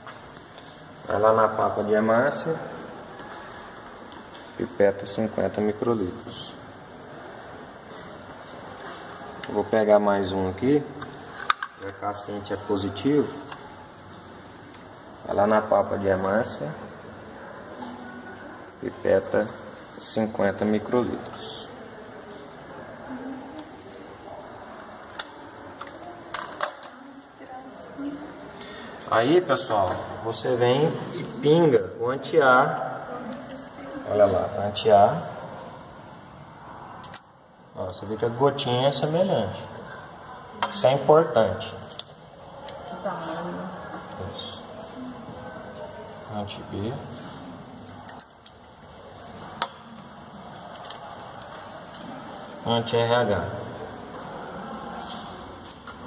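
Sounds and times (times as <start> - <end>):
low steady hiss: 0.0 - 56.0.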